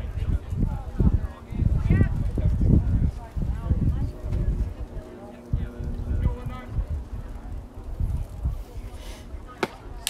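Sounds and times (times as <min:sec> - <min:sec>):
wind rumble on microphone: 0:00.0 - 0:10.0
baseball smacking into mitt: 0:09.6 - 0:09.8.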